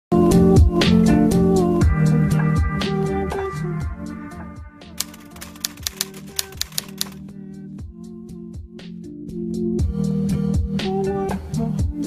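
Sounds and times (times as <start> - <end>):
typewriter key clicks: 5.0 - 7.2.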